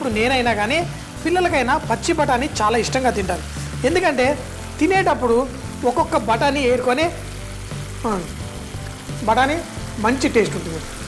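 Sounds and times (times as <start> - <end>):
curry sizzling in a pan: 0.0 - 11.0
faint background music: 0.0 - 11.0.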